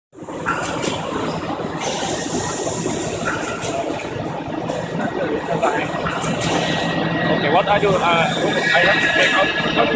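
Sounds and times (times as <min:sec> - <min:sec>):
machinery clatter and hum: 0:00.2 - 0:09.9.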